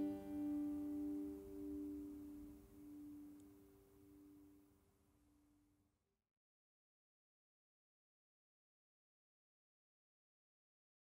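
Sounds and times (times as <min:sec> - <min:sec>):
acoustic guitar chord ringing: 0:00.0 - 0:04.4.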